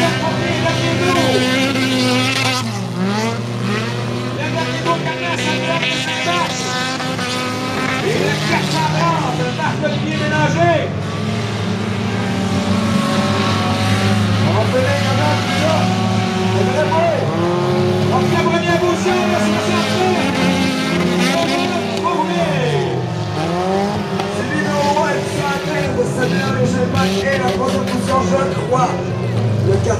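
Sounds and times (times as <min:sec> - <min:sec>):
stock car engines racing: 0:00.0 - 0:29.9.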